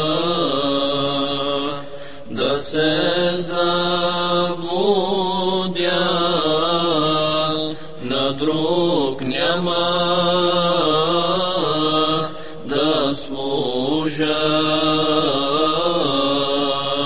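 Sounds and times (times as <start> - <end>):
devotional song with melismatic singing: 0.0 - 17.0.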